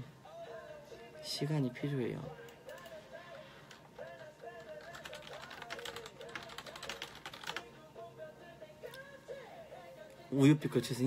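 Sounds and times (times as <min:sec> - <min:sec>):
quiet background music: 0:00.0 - 0:11.0
rapid keyboard typing: 0:02.4 - 0:07.7.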